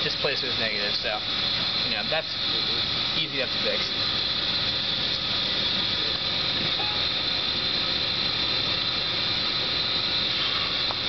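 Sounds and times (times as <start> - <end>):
lab machinery hiss and hum: 0.0 - 11.0.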